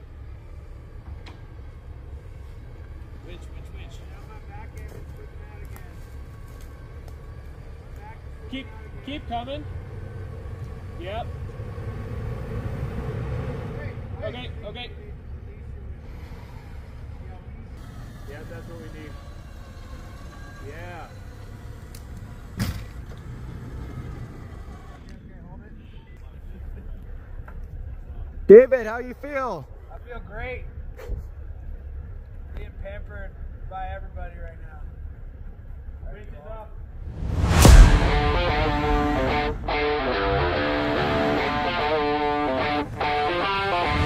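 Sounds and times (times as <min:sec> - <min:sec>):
vehicle engine idling: 0:00.0 - 0:13.0, 0:13.8 - 0:28.5, 0:29.2 - 0:44.0
sharp thump: 0:37.1 - 0:40.6.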